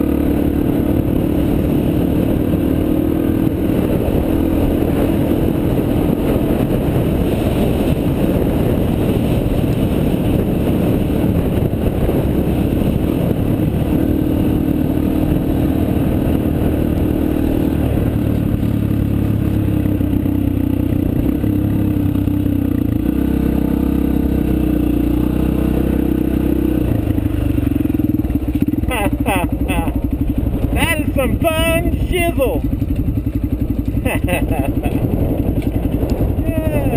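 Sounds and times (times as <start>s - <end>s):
dirt bike engine running: 0.0s - 36.9s.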